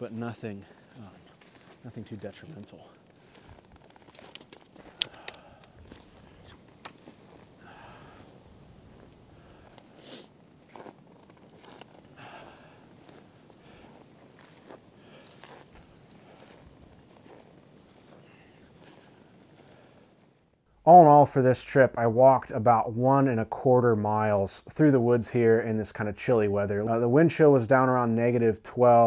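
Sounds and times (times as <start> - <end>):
footsteps in snow: 0.1 - 20.2.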